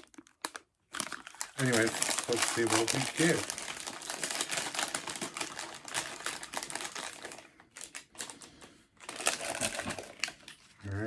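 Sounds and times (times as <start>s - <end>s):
packaging crinkling: 0.0s - 10.8s.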